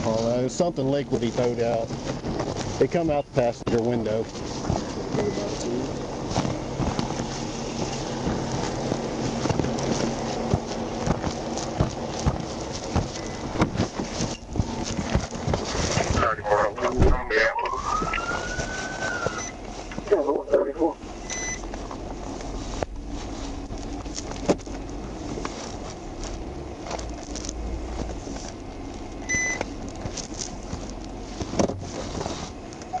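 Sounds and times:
microphone rubbing crackle: 1.1s - 20.9s
police siren wail: 16.9s - 19.6s
short high beeps: 19.2s - 19.6s, 21.2s - 21.6s, 29.3s - 29.6s.

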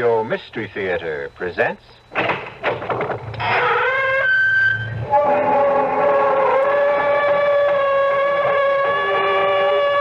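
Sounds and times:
door creaking open: 2.2s - 10.0s.

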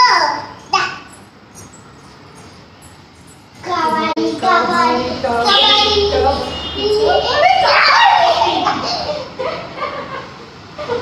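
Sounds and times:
child singing: 3.6s - 6.2s.

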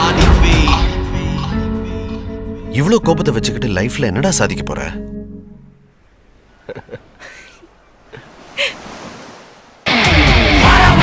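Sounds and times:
loud rock music: 0.0s - 2.5s, 9.9s - 11.0s
sea surf washing onto beach: 8.1s - 10.0s.

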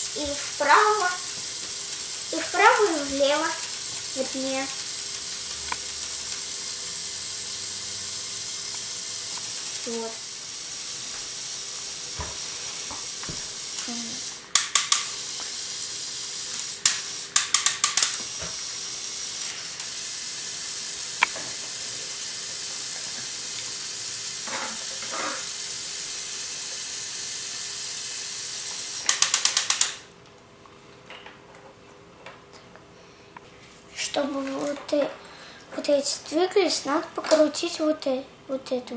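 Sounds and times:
rapid clicking: 0.0s - 6.8s, 16.5s - 18.3s, 29.0s - 30.0s
electric toy motors whining: 0.0s - 30.1s.

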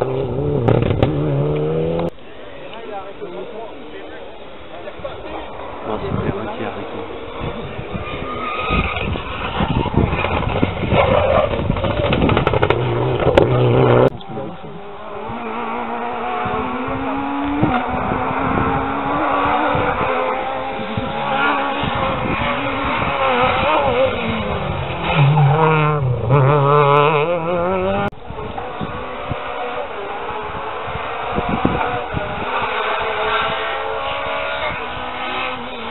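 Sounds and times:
car engine passing: 0.0s - 2.1s, 5.5s - 35.9s
rally car engines revving: 0.0s - 2.2s, 5.0s - 35.9s.

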